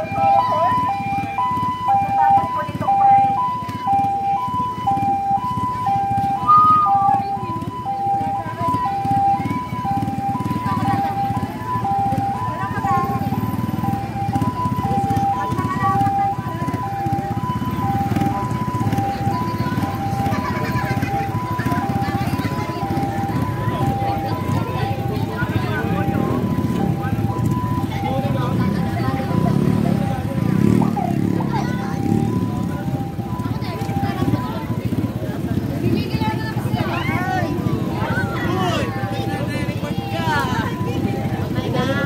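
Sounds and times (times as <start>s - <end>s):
crowd chatter: 0.0s - 42.0s
two-tone ambulance siren: 0.0s - 42.0s.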